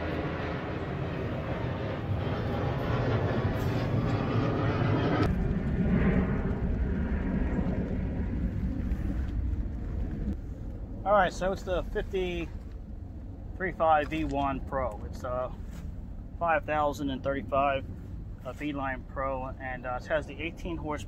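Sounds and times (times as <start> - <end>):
engine drone: 0.0 - 21.0.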